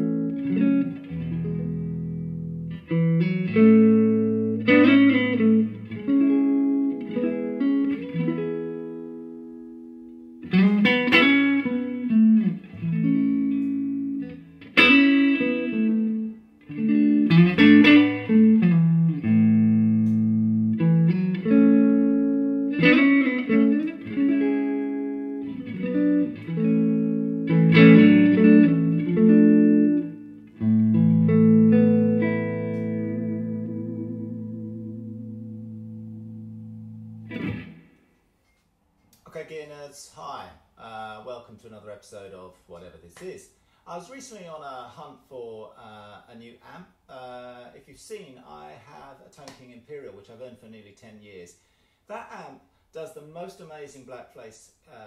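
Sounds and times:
electric guitar strumming chords: 0.0 - 38.1.

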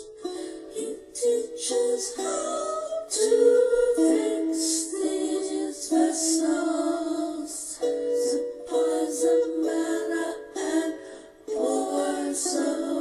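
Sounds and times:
woman singing: 0.0 - 13.0.

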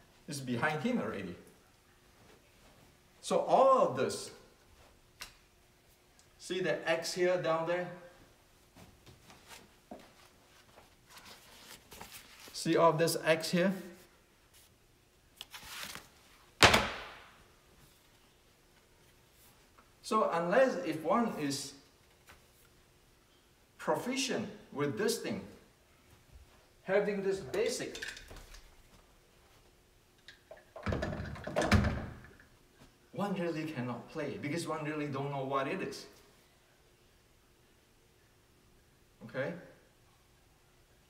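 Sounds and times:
cord rustling: 8.8 - 12.6
paper rustling: 10.6 - 12.6, 15.4 - 16.2.

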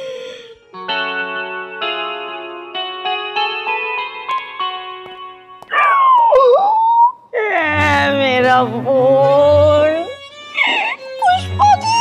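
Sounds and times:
person wailing: 5.7 - 8.1.

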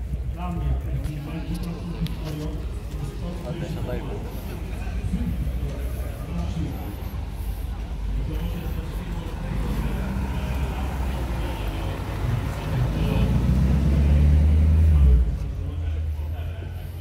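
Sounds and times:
car engine running: 1.2 - 17.0.

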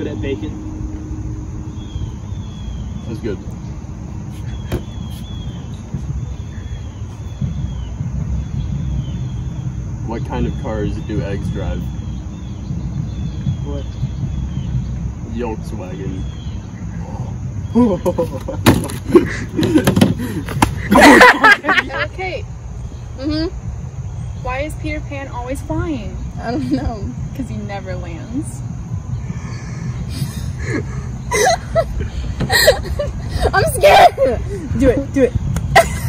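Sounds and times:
low uneven rumble: 0.0 - 36.0
stifled laugh: 17.7 - 21.9, 30.1 - 33.6, 35.7 - 36.0.

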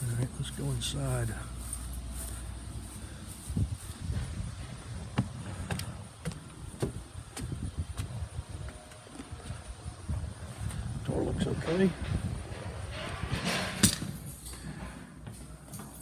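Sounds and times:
footsteps on wooden boards: 1.7 - 10.9.

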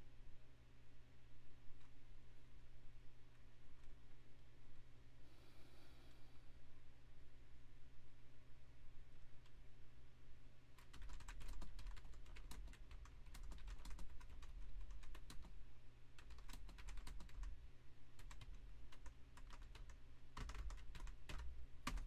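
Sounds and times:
typing on computer keyboard: 10.8 - 15.6, 16.2 - 17.6, 18.2 - 22.0.

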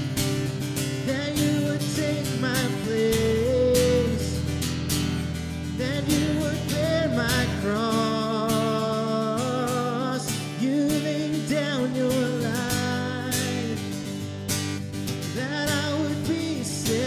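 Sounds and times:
man singing: 0.0 - 4.6, 5.6 - 14.4, 15.1 - 17.0
strummed guitar: 0.0 - 17.0.

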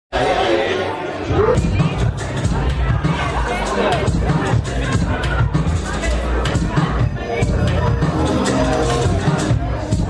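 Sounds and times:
crowd chatter: 0.1 - 10.0
bass-heavy dance music: 1.2 - 10.0.

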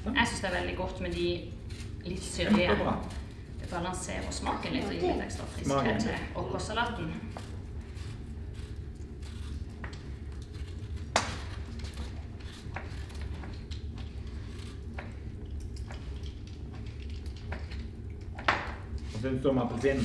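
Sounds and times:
apple being peeled: 0.0 - 20.0
low room hum: 0.0 - 20.0.

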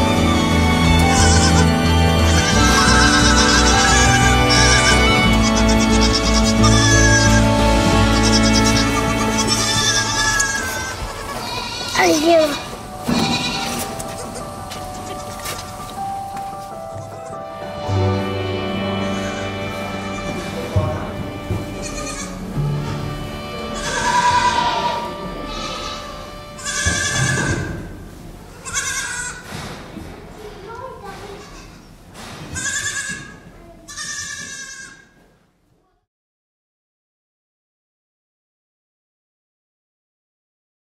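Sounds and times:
background music with sustained tones: 0.0 - 28.4
goat kid bleating: 1.0 - 15.8, 19.0 - 20.4, 21.8 - 23.0, 23.7 - 27.7, 28.5 - 29.5, 31.2 - 31.9, 32.6 - 35.2.

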